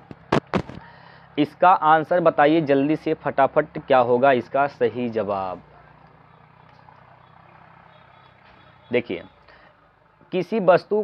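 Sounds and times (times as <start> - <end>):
man speaking: 8.9 - 9.3.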